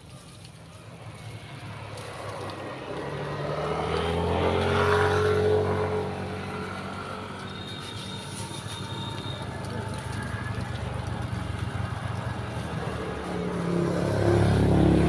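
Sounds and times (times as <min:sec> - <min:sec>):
vehicle engine passing: 0:00.6 - 0:15.0.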